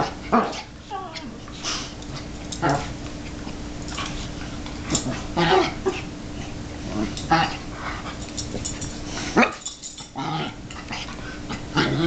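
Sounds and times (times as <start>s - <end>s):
dogs vocalizing while play-wrestling: 0.0s - 12.0s.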